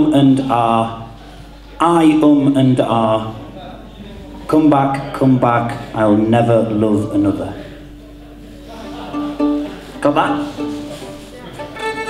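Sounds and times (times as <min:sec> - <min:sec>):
folk band playing softly: 0:07.8 - 0:12.0
plucked acoustic guitar notes: 0:08.0 - 0:12.0.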